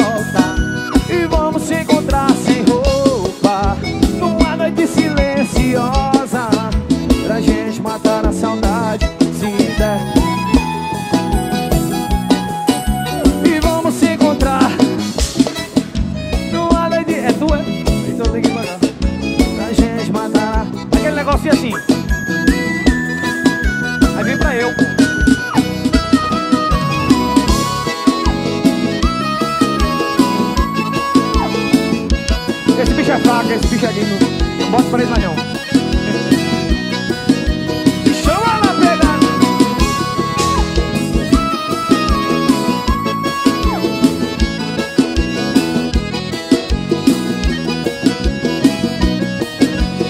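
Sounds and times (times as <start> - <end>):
bending lead melody: 0.0 - 50.0
live band playing: 0.0 - 50.0
steady kick drum beat: 0.0 - 50.0.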